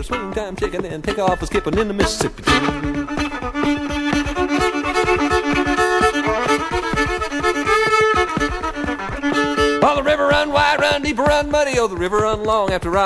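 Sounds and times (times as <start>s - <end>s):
fiddle playing: 0.0s - 13.0s
percussive beat: 0.0s - 13.0s.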